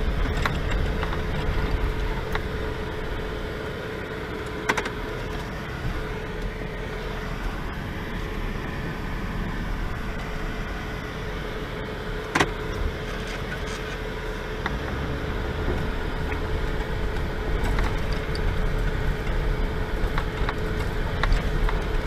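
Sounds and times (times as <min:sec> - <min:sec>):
engine and tyre rumble: 0:00.0 - 0:22.0
steady hum: 0:00.0 - 0:22.0.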